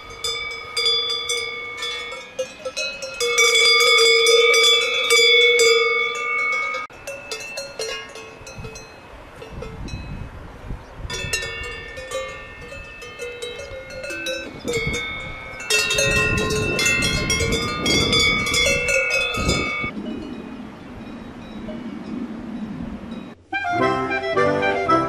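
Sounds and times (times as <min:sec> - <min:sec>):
cowbells clanging: 0:00.0 - 0:10.2, 0:11.1 - 0:20.3.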